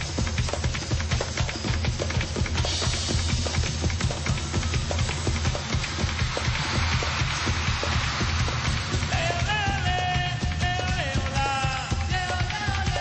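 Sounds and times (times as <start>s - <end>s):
bass beat: 0.0s - 13.0s
percussion striking: 0.0s - 13.0s.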